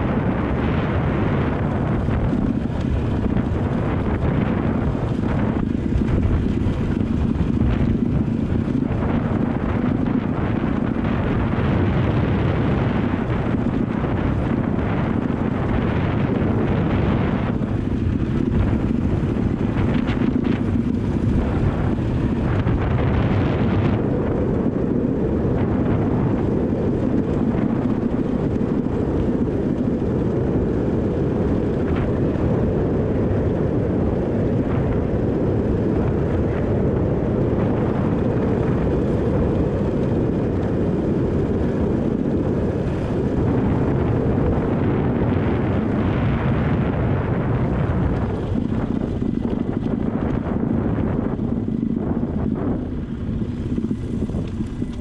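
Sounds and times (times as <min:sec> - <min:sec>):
motorcycle engine: 0:00.0 - 0:55.0
wind buffeting microphone: 0:00.0 - 0:55.0
tyres on gravel road: 0:47.4 - 0:55.0.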